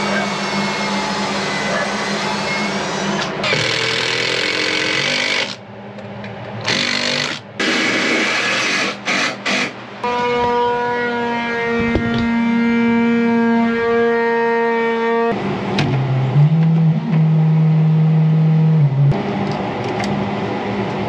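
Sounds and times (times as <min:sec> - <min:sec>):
power drill running in bursts: 0:03.4 - 0:05.6, 0:06.6 - 0:09.8.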